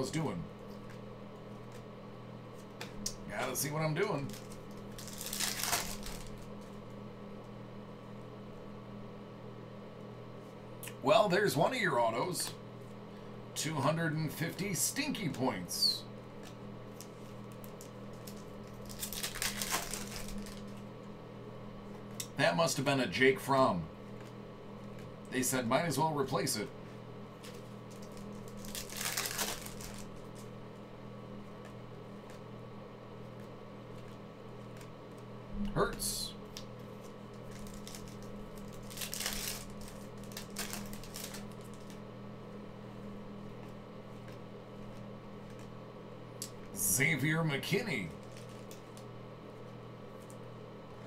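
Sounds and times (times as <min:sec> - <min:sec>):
faint steady hum: 0:00.0 - 0:51.0
trading cards rustling and clicking: 0:02.5 - 0:06.9, 0:16.4 - 0:20.8, 0:26.8 - 0:30.5, 0:33.2 - 0:35.3, 0:36.5 - 0:42.0, 0:48.1 - 0:50.4
foil wrapper crinkling: 0:03.0 - 0:06.8, 0:16.4 - 0:20.9, 0:27.4 - 0:30.5, 0:36.5 - 0:42.0, 0:48.2 - 0:49.1.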